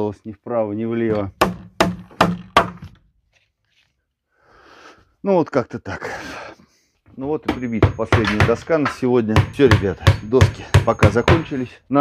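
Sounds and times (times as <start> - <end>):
faint breathy noise: 4.3 - 5.1.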